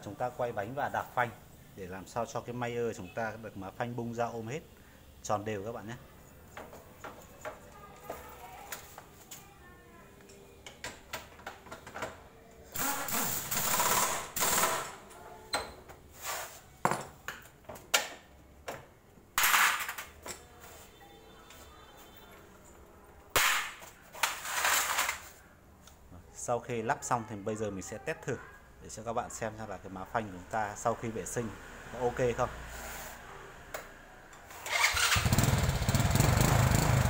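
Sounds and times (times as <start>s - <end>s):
pneumatic impact wrench rattling: 12.7s - 15.0s.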